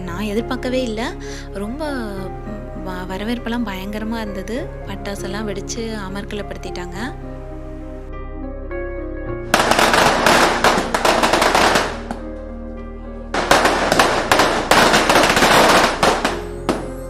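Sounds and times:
firecrackers banging: 9.5 - 12.3, 13.4 - 17.0.

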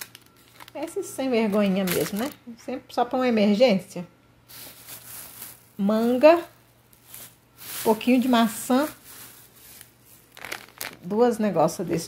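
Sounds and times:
plastic bags crinkling: 0.0 - 2.4, 4.5 - 11.3.

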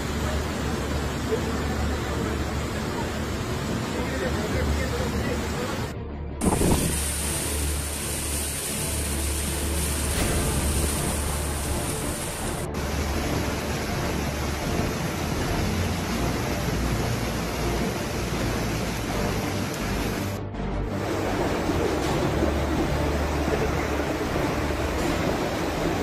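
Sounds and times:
floodwater rushing along street: 0.0 - 26.0
heavy rain: 0.0 - 26.0
wind: 0.0 - 26.0.

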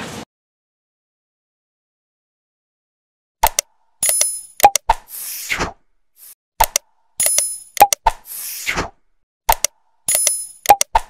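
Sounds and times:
sharp clicks: 3.4 - 4.9, 6.6 - 8.1, 9.5 - 11.0.

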